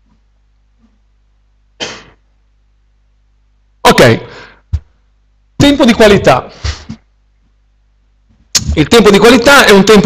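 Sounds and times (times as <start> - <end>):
low steady hum: 0.0 - 10.0
person coughing: 1.8 - 2.2.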